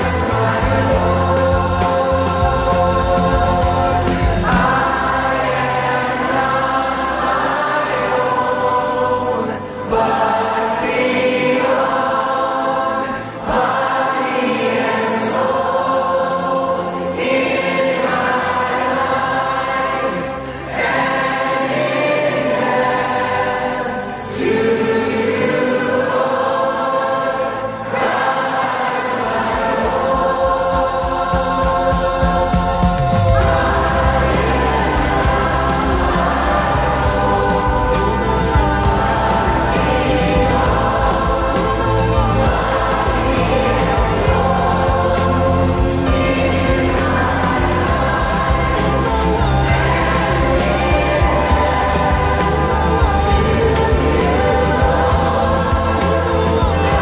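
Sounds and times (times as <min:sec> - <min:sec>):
choir singing worship song: 0:00.0 - 0:57.0
musical backing: 0:00.0 - 0:57.0.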